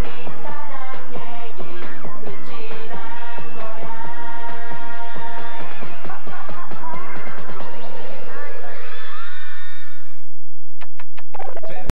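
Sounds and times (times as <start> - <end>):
stage music: 0.0 - 9.8.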